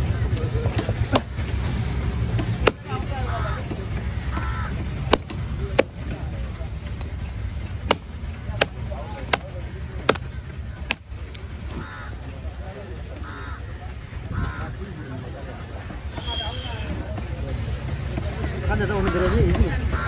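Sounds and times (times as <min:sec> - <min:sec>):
cleaver chopping on wooden block: 0:02.3 - 0:03.1, 0:03.7 - 0:06.2, 0:07.8 - 0:11.1.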